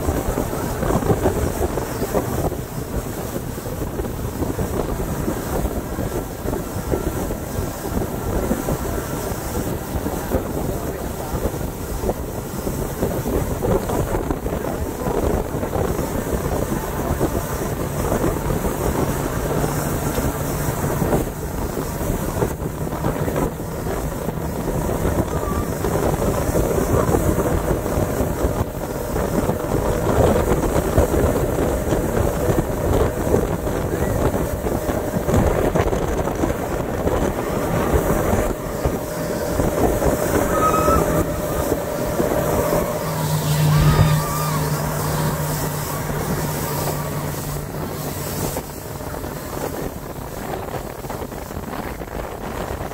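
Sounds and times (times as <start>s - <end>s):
churning wake hissing: 0.0s - 52.9s
outboard motor running: 0.0s - 52.9s
wind buffeting microphone: 0.0s - 52.9s.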